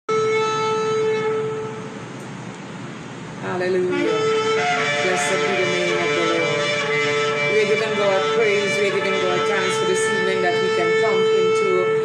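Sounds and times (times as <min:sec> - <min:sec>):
ram's horn blast: 0:00.1 - 0:02.1, 0:03.8 - 0:12.0.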